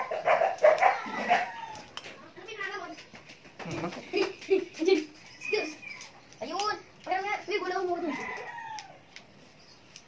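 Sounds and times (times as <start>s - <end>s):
rooster crowing: 0.0s - 1.9s, 8.0s - 9.0s.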